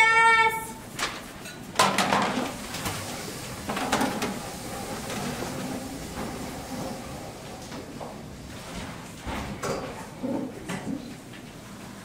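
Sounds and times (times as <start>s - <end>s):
chairs knocking and scraping: 1.0s - 11.3s.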